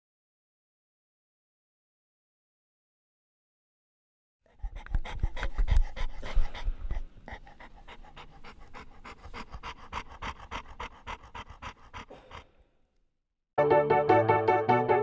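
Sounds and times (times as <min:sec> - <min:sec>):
dog panting rapidly: 0:04.5 - 0:12.6.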